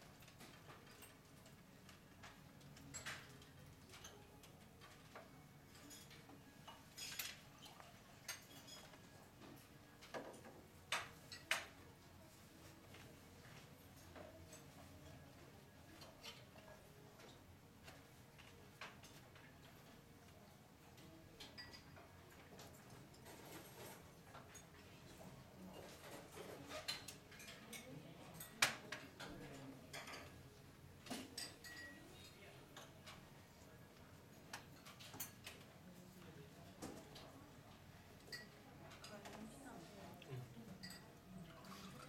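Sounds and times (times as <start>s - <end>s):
faint clinks of tableware: 2.7s - 11.8s, 20.9s - 33.7s, 38.2s - 39.4s, 40.4s - 42.0s.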